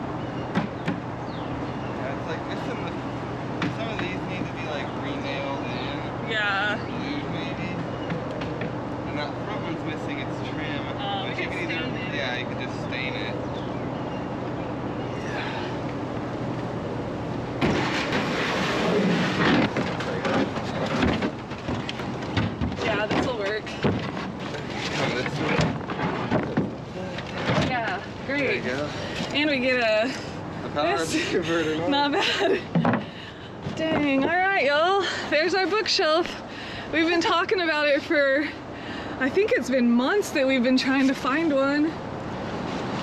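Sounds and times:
steady low hum: 0:00.0 - 0:43.0
bookshelf thumping and scraping: 0:17.6 - 0:26.8.

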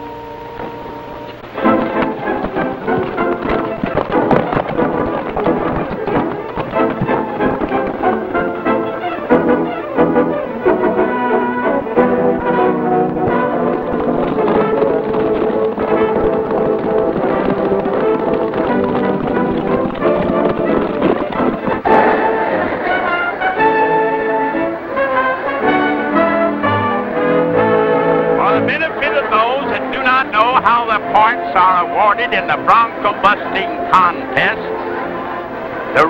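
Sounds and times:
brass band playing chords: 0:00.0 - 0:36.0
voices: 0:28.4 - 0:36.0.

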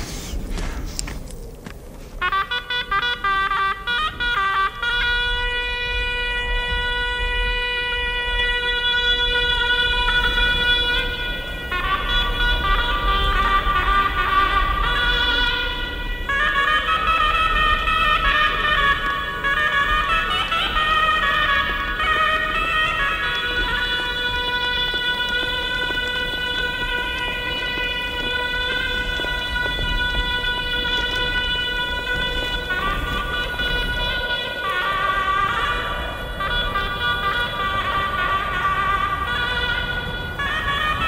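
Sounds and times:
shawm playing melody: 0:00.0 - 0:41.0.

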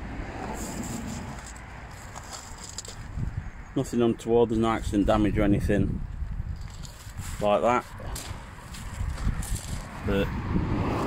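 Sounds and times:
footsteps on gravel: 0:00.5 - 0:03.3, 0:06.5 - 0:10.1.

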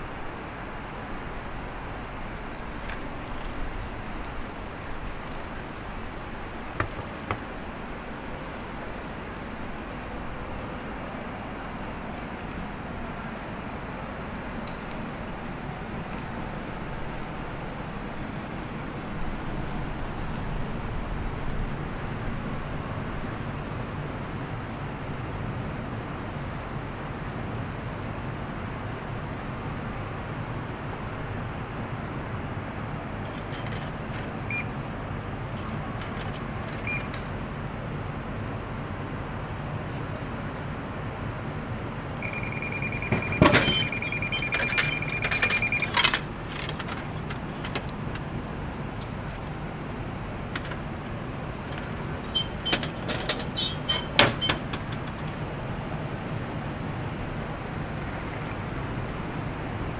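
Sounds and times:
city street traffic rumble: 0:00.0 - 0:59.9
high electronic alarm tone: 0:42.2 - 0:45.9.

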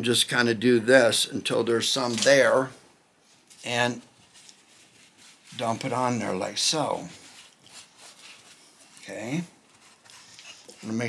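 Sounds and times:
paper towel rubbing on wood: 0:04.2 - 0:11.0.

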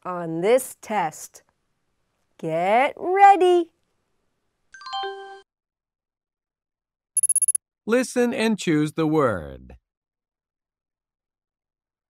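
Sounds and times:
metallic bell trill: 0:07.2 - 0:07.6.

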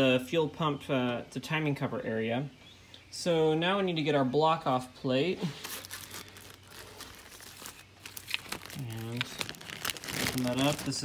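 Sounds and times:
plastic bags crinkling: 0:05.4 - 0:11.0.

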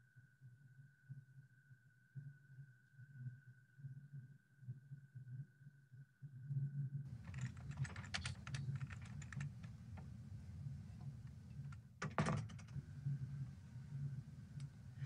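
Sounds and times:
computer keyboard typing: 0:07.1 - 0:09.8.

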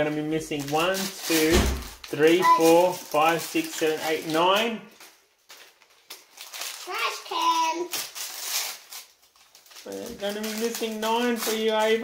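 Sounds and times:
foil wrappers crinkling and tearing: 0:00.0 - 0:12.0.

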